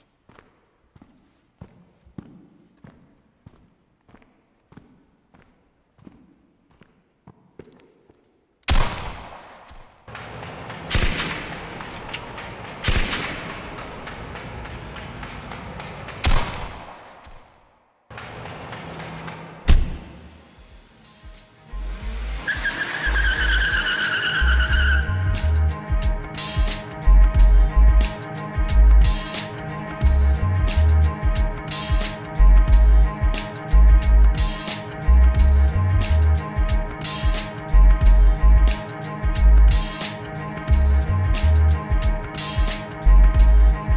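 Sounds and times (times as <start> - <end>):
deep bass notes: 24.5 - 25.8, 27.1 - 28.1, 30.0 - 31.2, 32.4 - 34.4, 35.1 - 36.5, 37.8 - 39.8, 40.7 - 41.9, 43.1 - 43.9.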